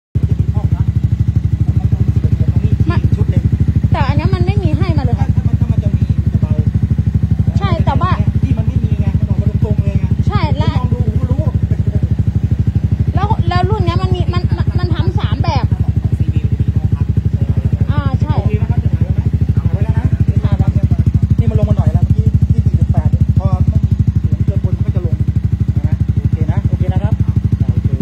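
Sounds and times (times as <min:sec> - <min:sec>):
scooter engine idling: 0:00.2 - 0:28.0.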